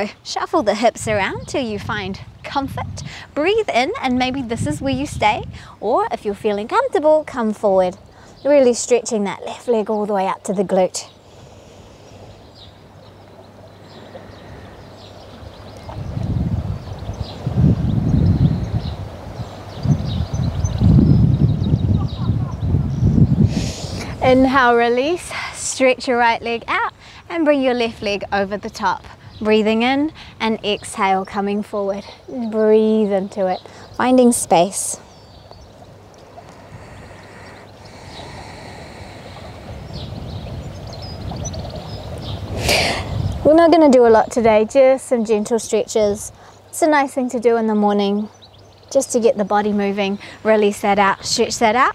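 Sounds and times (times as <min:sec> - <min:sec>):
wind buffeting microphone: 0:00.0 - 0:11.2, 0:12.1 - 0:51.9
faint bird chirps: 0:35.0 - 0:42.6.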